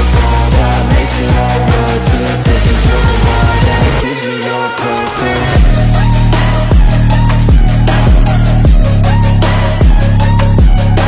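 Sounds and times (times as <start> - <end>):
electronic workout music: 0.0 - 11.0
deep kick drum hits: 5.6 - 5.9.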